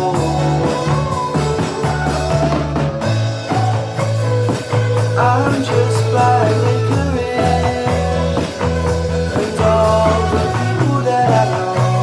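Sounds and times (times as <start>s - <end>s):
drum kit beat: 0.0s - 12.0s
electric bass line: 0.0s - 12.0s
guitars playing melodic notes: 0.0s - 12.0s.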